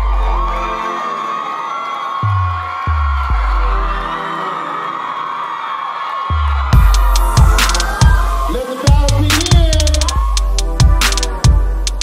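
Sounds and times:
electronic music: 0.0 - 5.5, 6.4 - 12.0
deep booming bass hits: 6.8 - 8.4.

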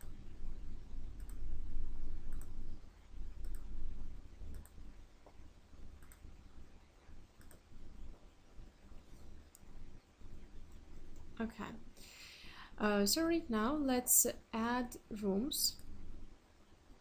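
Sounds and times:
computer mouse clicking: 1.2 - 1.5, 2.3 - 2.6, 3.4 - 3.7, 4.5 - 4.8, 6.0 - 6.3, 7.4 - 7.7.

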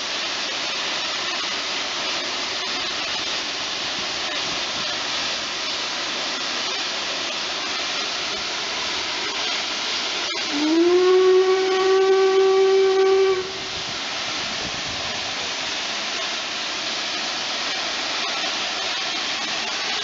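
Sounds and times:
steam locomotive hissing: 0.0 - 20.0
deep steam whistle: 10.3 - 14.4.

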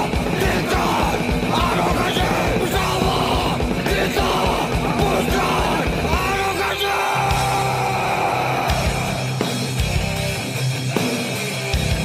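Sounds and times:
shouted vocals: 0.0 - 9.5
driving drum beat: 0.0 - 12.0
rock song: 0.0 - 12.0.

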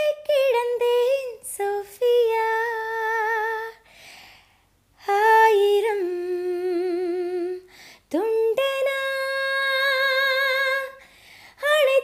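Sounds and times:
intake of breath: 3.8 - 4.8, 7.7 - 8.1, 11.0 - 11.6.

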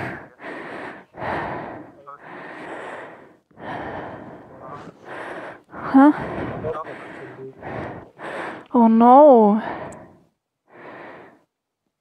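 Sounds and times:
person breathing heavily: 0.0 - 8.8, 9.4 - 11.5.

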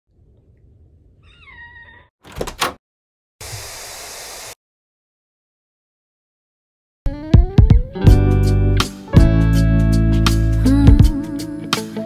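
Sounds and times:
high-pitched cry: 1.2 - 2.1.

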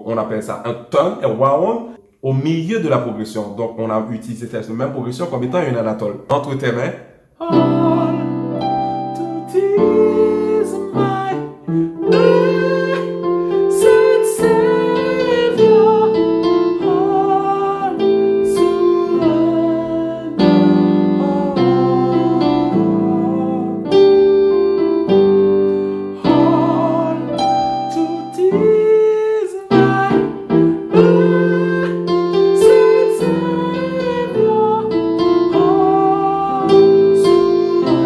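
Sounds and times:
slow gospel piano chords: 7.4 - 38.0.

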